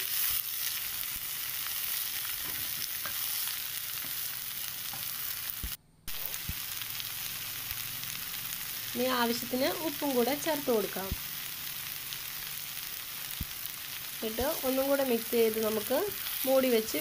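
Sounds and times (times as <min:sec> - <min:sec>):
food sizzling in a hot pan: 0:00.0 - 0:17.0.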